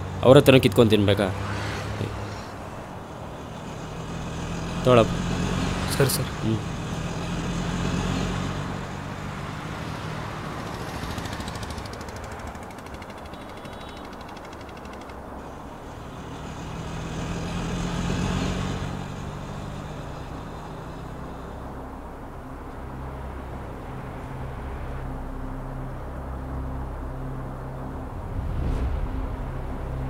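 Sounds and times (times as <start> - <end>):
vehicle engine humming: 0.0 - 30.0.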